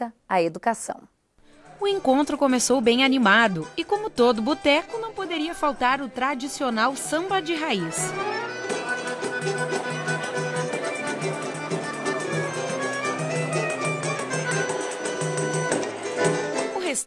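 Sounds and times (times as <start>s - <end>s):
pandeiro: 1.4s - 17.0s
accordion long notes: 1.6s - 16.8s
guitars strumming: 2.0s - 17.0s.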